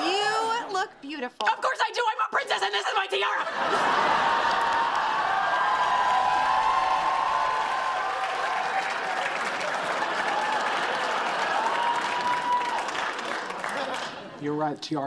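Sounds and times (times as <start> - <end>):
audience applauding: 3.6 - 14.4.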